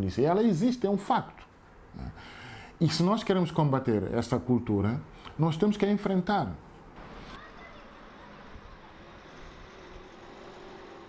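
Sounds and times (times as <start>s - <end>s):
background hiss: 0.0s - 7.5s
distant traffic hum: 0.0s - 11.0s.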